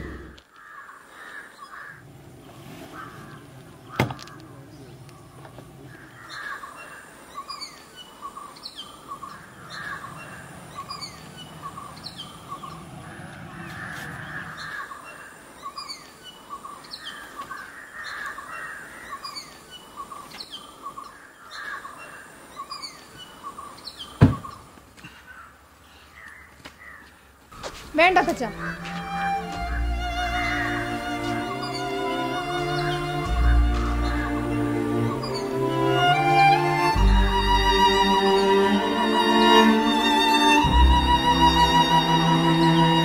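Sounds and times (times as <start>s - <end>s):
birds chirping: 0.0s - 43.0s.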